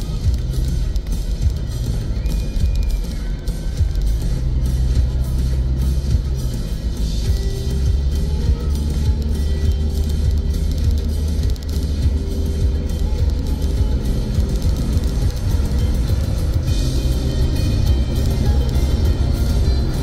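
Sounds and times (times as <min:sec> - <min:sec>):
background music with held notes: 0:00.0 - 0:20.0
road noise inside moving car: 0:00.0 - 0:20.0.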